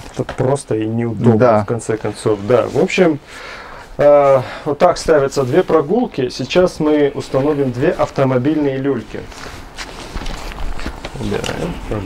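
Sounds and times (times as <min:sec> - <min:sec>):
fabric rustling: 0:01.9 - 0:12.0.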